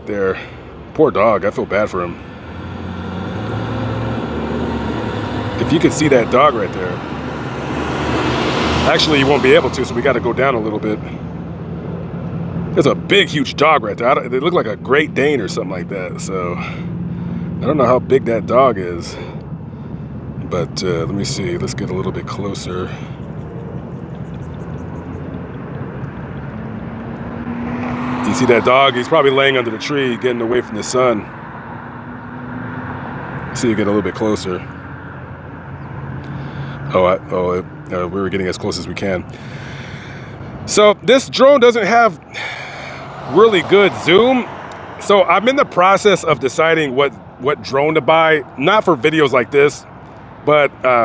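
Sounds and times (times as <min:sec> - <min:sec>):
vehicle engine running: 0:00.3 - 0:51.0.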